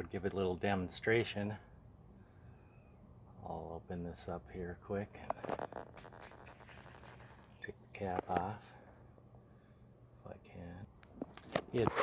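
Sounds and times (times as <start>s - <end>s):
faint handling noise: 5.1s - 9.1s, 11.0s - 12.0s.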